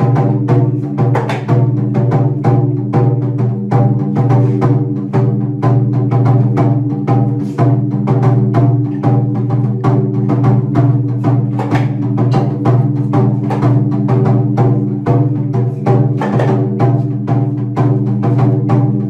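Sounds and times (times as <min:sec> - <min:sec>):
taiko drum beating: 0:00.0 - 0:19.0.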